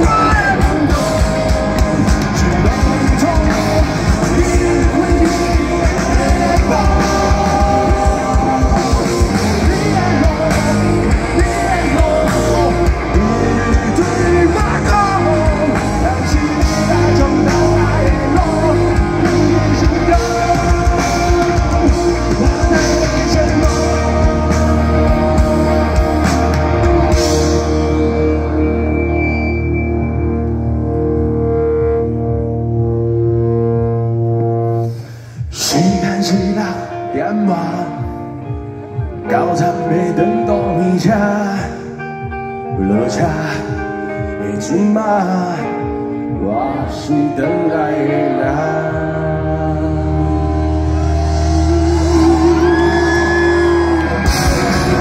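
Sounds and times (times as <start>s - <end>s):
rock band sustained chord: 0.0s - 35.0s, 48.4s - 55.0s
concert crowd: 0.0s - 55.0s.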